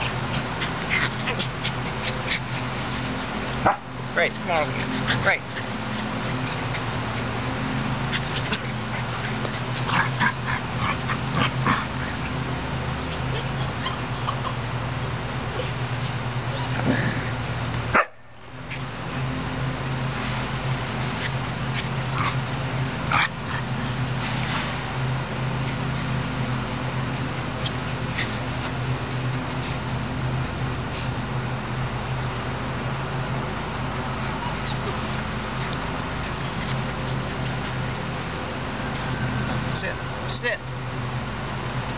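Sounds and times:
puppies yipping and whimpering: 0:00.0 - 0:32.3, 0:33.9 - 0:40.3
steady low hum: 0:00.0 - 0:41.9.

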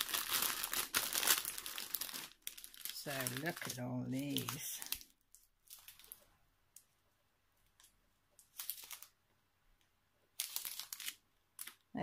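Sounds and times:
plastic bags crinkling: 0:00.0 - 0:06.3, 0:07.8 - 0:09.2, 0:10.3 - 0:11.9.

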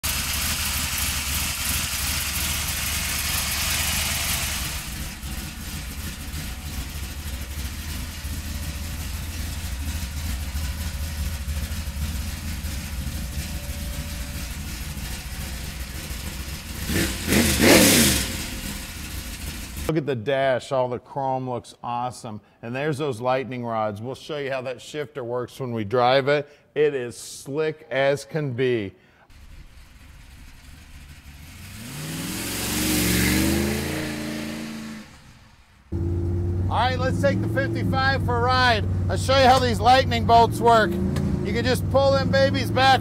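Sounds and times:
car engine idling: 0:00.0 - 0:19.9, 0:29.3 - 0:43.0
engine throttle blip: 0:01.9 - 0:19.9, 0:32.4 - 0:41.5.

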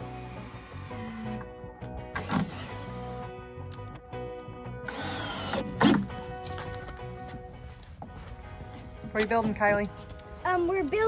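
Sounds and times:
cordless drill driving screws: 0:00.0 - 0:03.3, 0:04.8 - 0:06.1
background music: 0:00.0 - 0:11.0.

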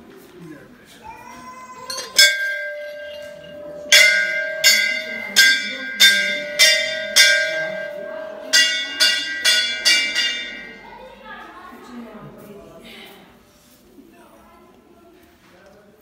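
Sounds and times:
temple bell ringing strikes: 0:01.9 - 0:11.5.

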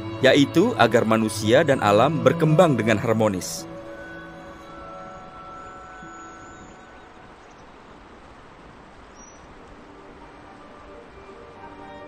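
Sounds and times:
faint rushing noise: 0:00.0 - 0:12.0
soft background music: 0:00.0 - 0:12.0
high chirps: 0:03.7 - 0:08.1.

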